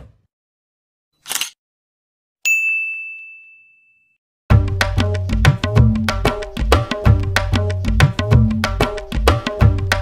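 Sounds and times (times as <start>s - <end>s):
bright bell ding: 2.5s - 4.2s.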